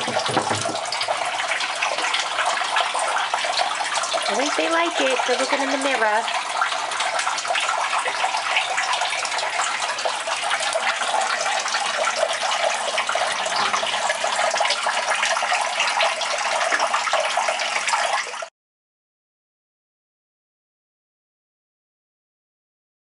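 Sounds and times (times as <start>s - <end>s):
tank filter water pouring: 0.0s - 18.5s.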